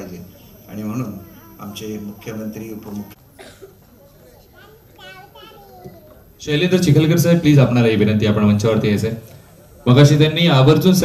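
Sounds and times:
background chatter of voices: 0.0 - 11.0.

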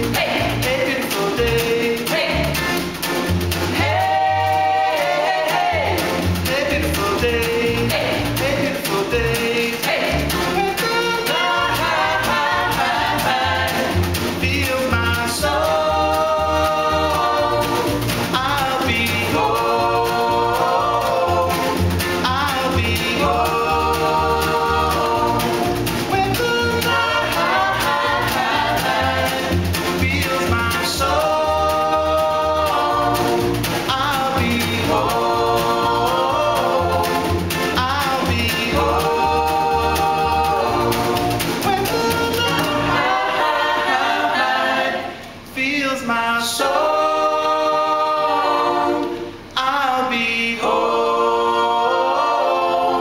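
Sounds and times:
acoustic guitar: 0.0 - 53.0
upright bass: 0.0 - 53.0
voices singing in harmony: 0.0 - 53.0.

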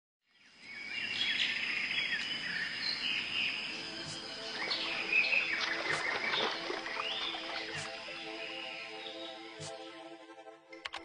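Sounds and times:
birds chirping: 0.4 - 9.9
insect trill: 0.4 - 10.0
soft music with held tones: 3.1 - 11.0.

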